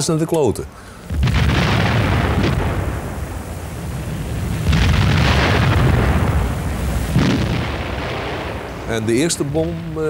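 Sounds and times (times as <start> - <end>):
sharp blast: 1.0 - 9.8
rumbling explosions: 1.0 - 10.0.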